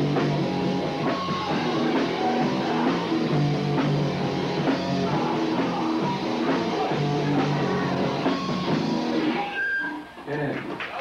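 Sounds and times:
song: 0.0 - 10.2
high whistle-like cry: 9.4 - 10.1.

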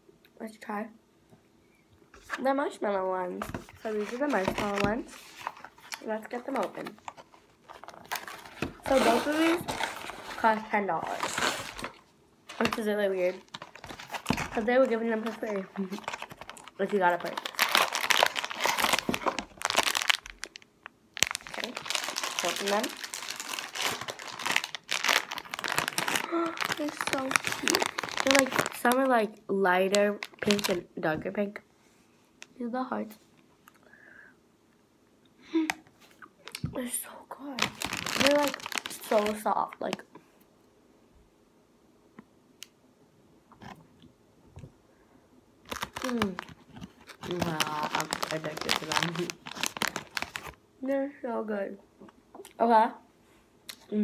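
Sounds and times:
candy packaging crinkling: 3.4 - 30.9, 37.4 - 40.1, 45.6 - 50.6.

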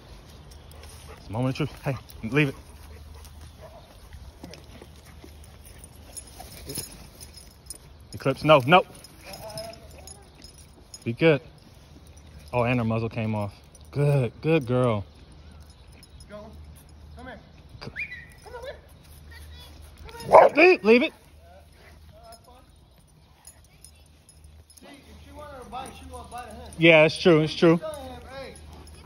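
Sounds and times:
dogs sniffing: 0.0 - 8.0, 22.8 - 29.0.

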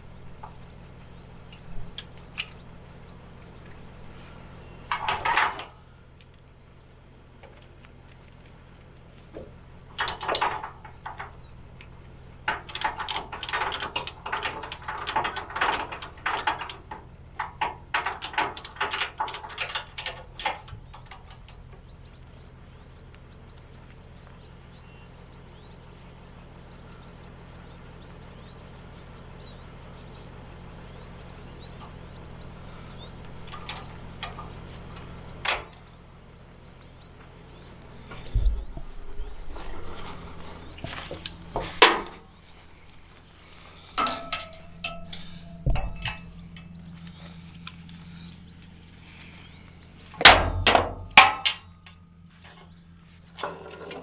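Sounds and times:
steady low hum: 0.0 - 54.0
metal hooks clinking and rattling: 9.9 - 21.7, 43.8 - 48.0.

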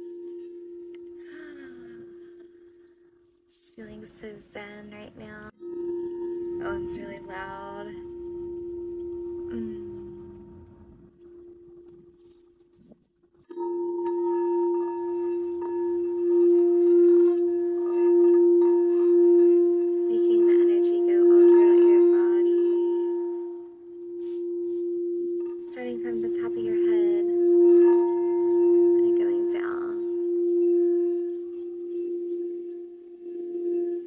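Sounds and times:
singing bowl tone: 0.0 - 3.4, 5.5 - 12.8, 13.4 - 34.0
wand striking singing bowl: 5.5 - 12.4, 13.5 - 34.0.

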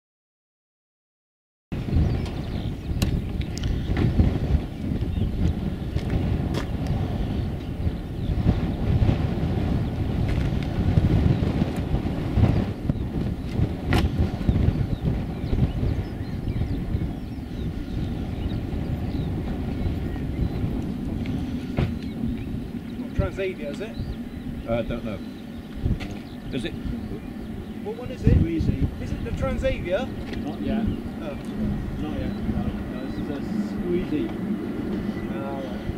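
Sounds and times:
gusty wind buffeting microphone: 1.7 - 35.9
distant airliner engines whining: 1.8 - 35.9.

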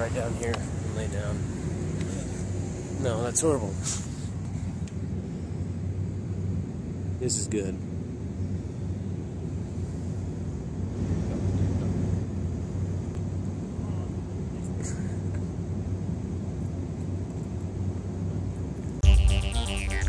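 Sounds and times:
distant traffic rumble: 0.0 - 19.0.

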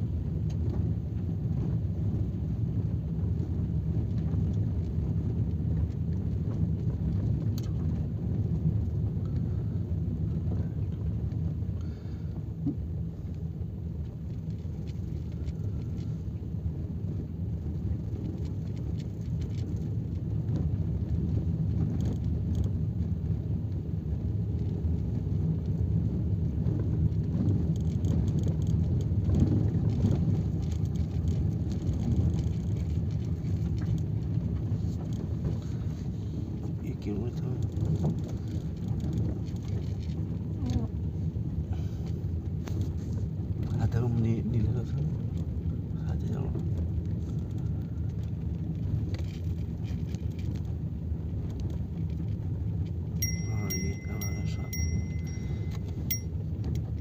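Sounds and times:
road noise: 0.0 - 57.0
vehicle engine rumble: 0.0 - 57.0.

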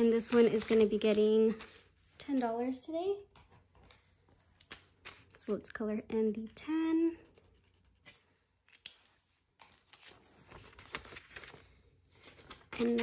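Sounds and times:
paper rustling: 0.0 - 2.5, 7.8 - 13.0.

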